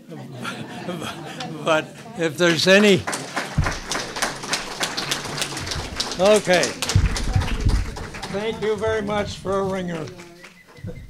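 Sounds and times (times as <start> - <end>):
audience clapping: 0.4 - 10.8
low thump: 3.6 - 9.8.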